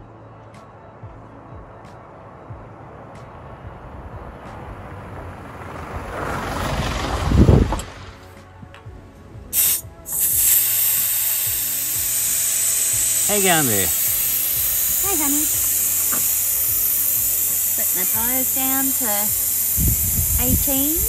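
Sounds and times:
vehicle passing on dirt road: 0.3s - 10.1s
air hissing from tyre valve: 9.5s - 21.0s.

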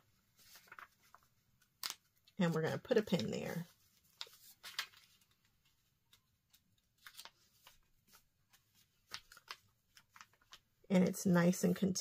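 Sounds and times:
paper rustling: 0.1s - 10.7s.

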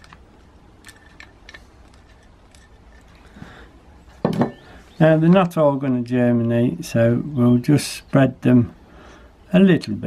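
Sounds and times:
seeds ticking and scraping: 0.0s - 3.7s.

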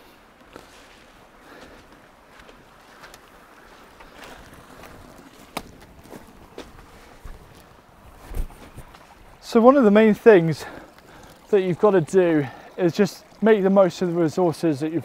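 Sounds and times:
small stream rushing: 0.0s - 15.0s
footsteps on grass and leaves: 0.5s - 9.3s
twigs snapping: 4.0s - 7.7s.

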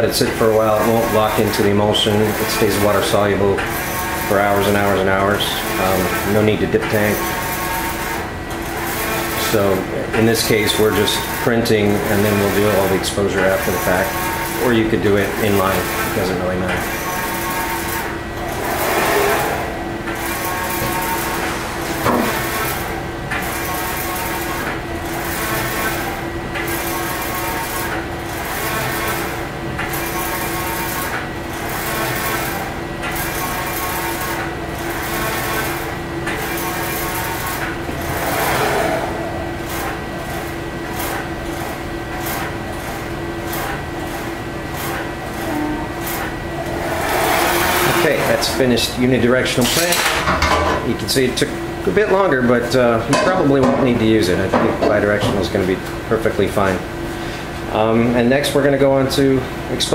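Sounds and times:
steady motor hum: 0.0s - 59.9s.

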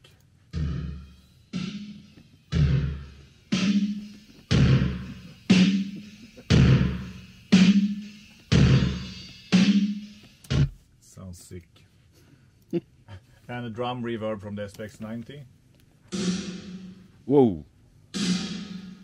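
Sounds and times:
distorted drum hits: 0.6s - 10.8s, 16.1s - 17.2s, 18.2s - 19.0s.

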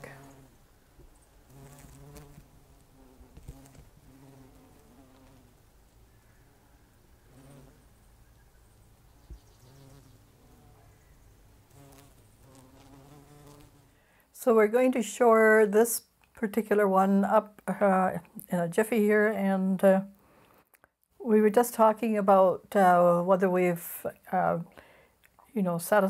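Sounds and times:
bumblebees buzzing: 0.0s - 14.0s.

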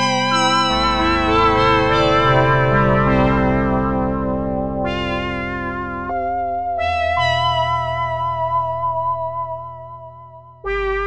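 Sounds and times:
synthesizer pad chords: 0.0s - 11.0s.

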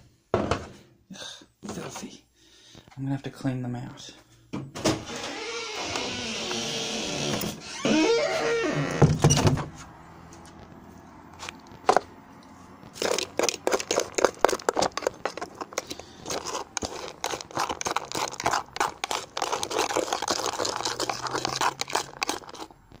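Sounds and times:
fork scraping plastic bowl: 12.9s - 23.0s.

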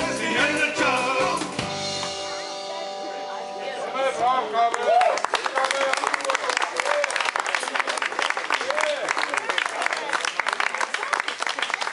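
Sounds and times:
audience applauding: 4.7s - 11.9s.

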